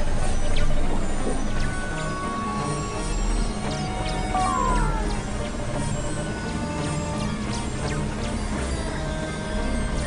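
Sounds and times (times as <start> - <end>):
tone gliding down in pitch: 4.3 - 5.5.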